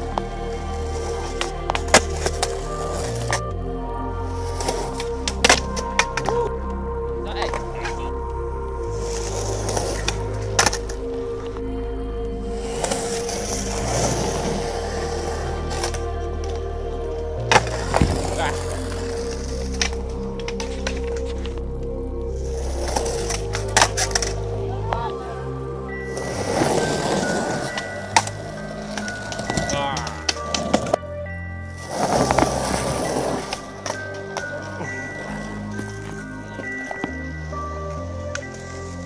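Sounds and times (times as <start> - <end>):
background music: 0.0 - 39.0
skateboard wheels rolling on concrete: 0.0 - 39.0
skateboard clacking on ground: 4.5 - 6.5, 22.8 - 25.1, 26.1 - 31.0.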